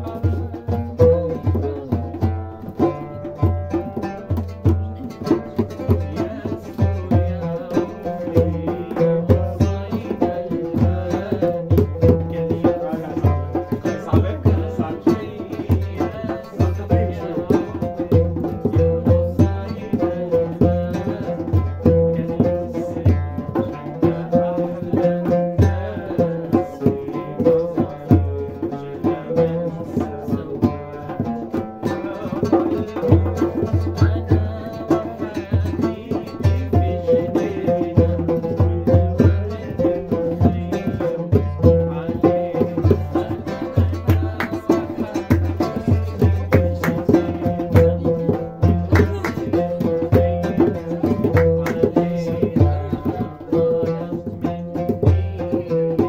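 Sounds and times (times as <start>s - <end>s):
hand drum beat: 0.0s - 56.0s
oud plucked melody: 0.0s - 56.0s.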